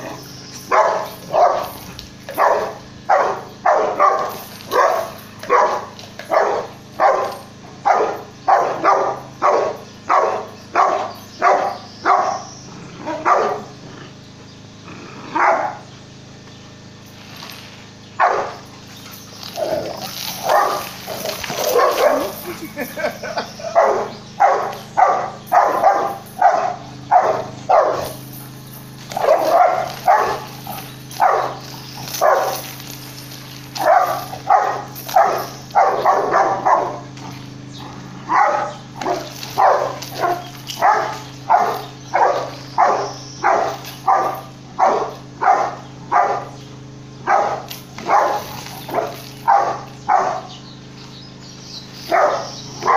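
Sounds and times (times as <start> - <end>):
dog barking: 0.7 - 13.7, 15.3 - 15.8, 18.2 - 18.6, 19.6 - 22.4, 23.3 - 28.2, 29.2 - 30.5, 31.2 - 32.6, 33.8 - 37.2, 38.3 - 46.6, 47.2 - 50.6, 52.1 - 52.9.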